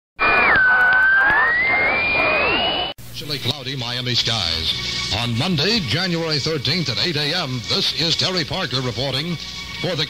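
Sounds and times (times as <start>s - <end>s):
high whistling radio tone: 0.2s - 3.0s.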